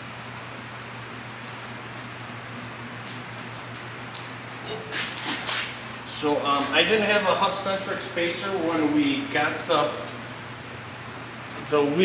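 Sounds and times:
low shop hum: 0:00.0 - 0:12.0.

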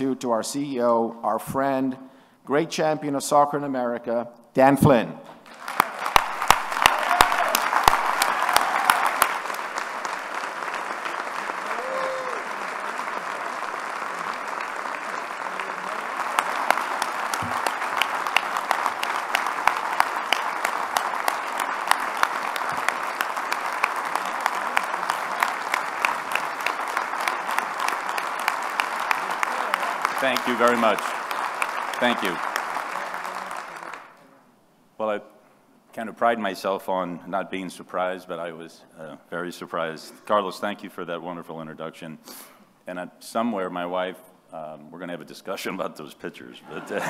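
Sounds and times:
audience applauding: 0:05.4 - 0:34.2.

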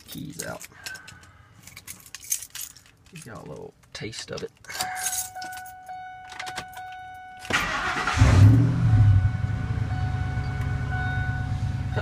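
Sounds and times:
keys jangling: 0:00.0 - 0:07.0.

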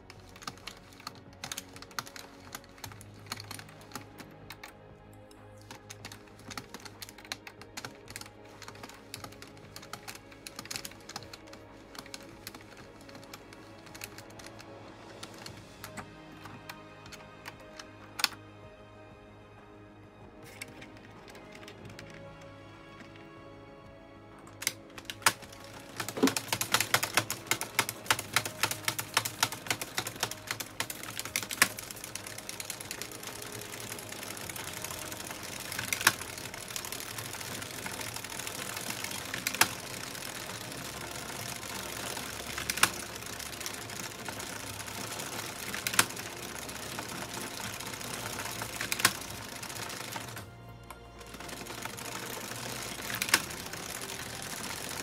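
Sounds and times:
knitting machine needles rattling: 0:00.0 - 0:18.4, 0:20.4 - 0:23.6, 0:24.3 - 0:55.0
plastic clicks: 0:00.0 - 0:18.4, 0:20.4 - 0:23.3, 0:24.4 - 0:55.0.

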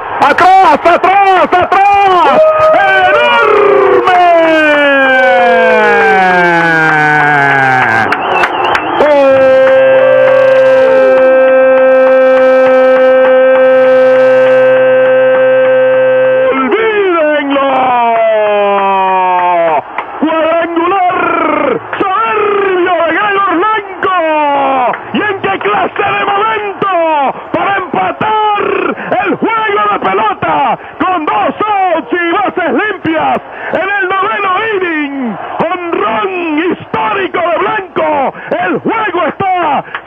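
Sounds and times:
excited rapid radio commentary: 0:00.2 - 0:06.7, 0:09.0 - 0:11.4, 0:16.3 - 0:39.9
radio announcer shouting: 0:00.2 - 0:08.0, 0:09.0 - 0:40.0.

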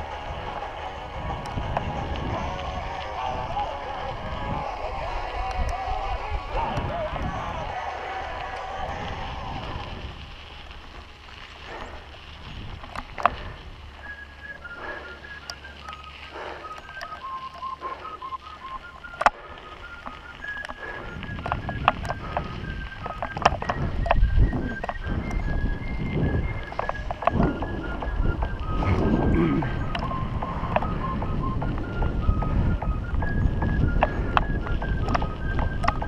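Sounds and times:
mountain bike on gravel: 0:00.0 - 0:36.0
wind noise: 0:00.0 - 0:36.0
bike clicks and knocks: 0:10.6 - 0:13.6, 0:19.0 - 0:25.6, 0:26.2 - 0:36.0
person whistling a tune: 0:13.4 - 0:36.0.

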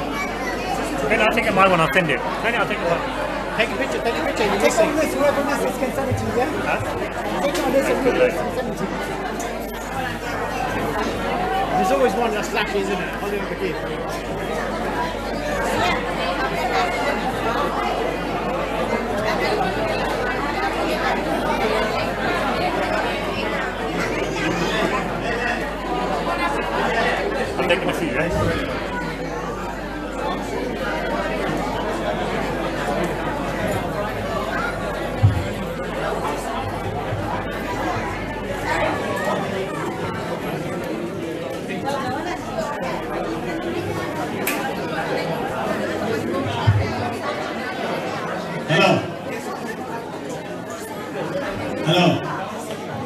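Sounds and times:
hubbub of overlapping conversation: 0:00.0 - 0:53.0.

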